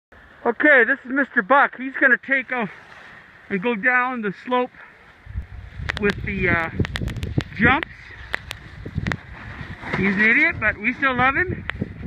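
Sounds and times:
wind rumble on microphone: 0:05.1 - 0:12.0
faint clicks: 0:06.8 - 0:09.2.

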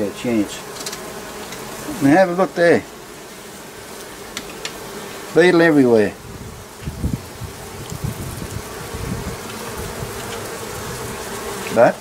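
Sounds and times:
bees buzzing: 0:00.0 - 0:12.0
single bee droning past: 0:00.0 - 0:12.0.

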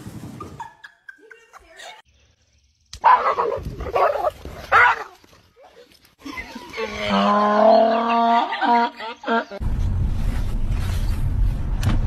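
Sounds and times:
dog barking: 0:03.0 - 0:05.1.

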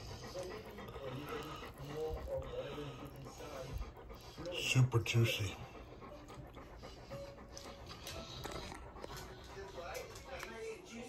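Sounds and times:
dog panting and whining: 0:00.0 - 0:11.0.

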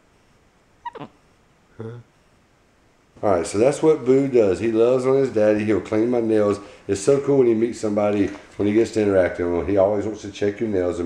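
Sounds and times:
man saying huh: 0:01.8 - 0:02.1.

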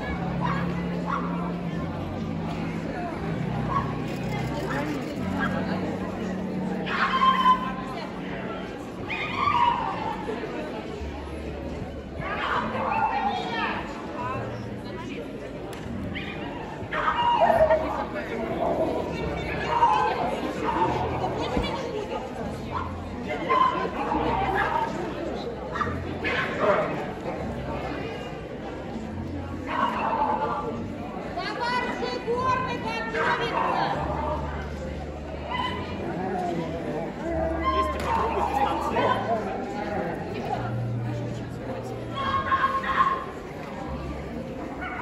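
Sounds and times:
crowd chatter in large hall: 0:00.0 - 0:45.0
murmuring voices: 0:00.0 - 0:45.0
people talking nearby: 0:00.0 - 0:45.0.

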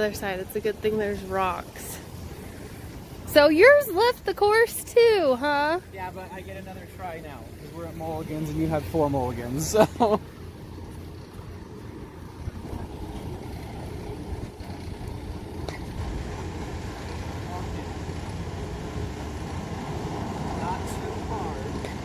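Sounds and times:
low outdoor background rumble: 0:00.0 - 0:22.0.

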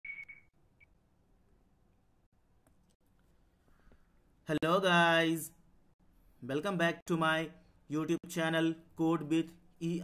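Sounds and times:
high steady tone: 0:00.0 - 0:00.9.

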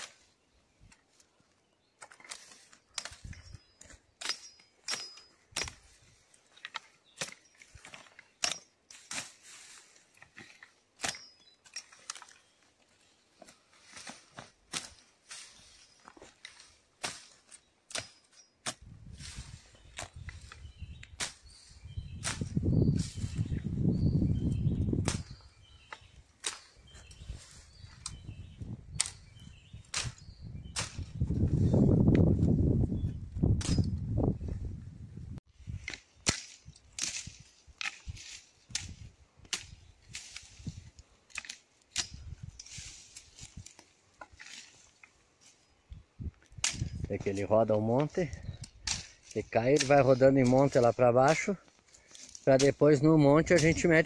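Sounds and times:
machete chopping through brush: 0:13.8 - 0:21.6, 0:25.0 - 0:25.4, 0:26.4 - 0:26.8, 0:28.9 - 0:31.1, 0:35.8 - 0:44.8, 0:46.6 - 0:47.0, 0:48.7 - 0:51.5, 0:53.5 - 0:54.0.

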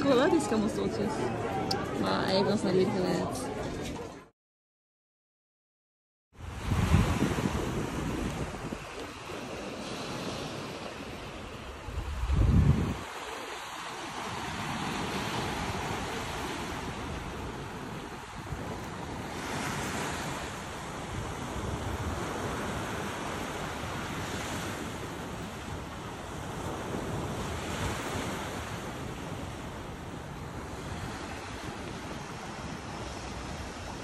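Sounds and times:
wind buffeting microphone: 0:06.4 - 0:34.0.

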